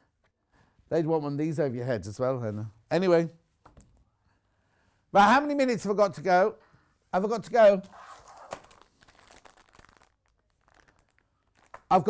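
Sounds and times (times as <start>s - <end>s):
plastic packet crinkling: 8.2s - 12.0s.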